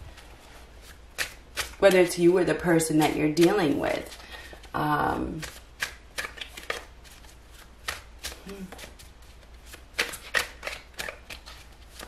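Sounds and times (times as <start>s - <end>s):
cards being shuffled: 0.1s - 2.1s, 3.0s - 12.0s.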